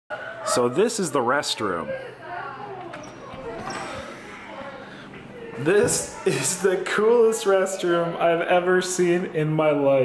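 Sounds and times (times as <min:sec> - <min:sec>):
faint voices talking: 0:00.1 - 0:10.0.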